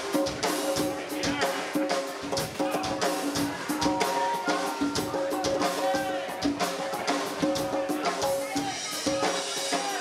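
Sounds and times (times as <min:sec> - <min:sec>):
drum kit beat: 0:00.0 - 0:10.0.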